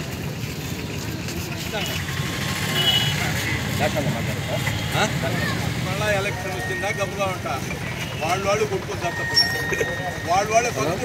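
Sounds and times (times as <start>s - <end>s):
vehicle engine running: 0.0s - 11.0s
high double beep: 8.9s - 10.8s.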